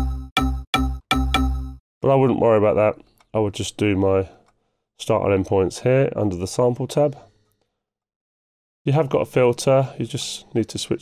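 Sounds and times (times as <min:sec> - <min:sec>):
synth pluck notes: 0:00.0 - 0:01.8.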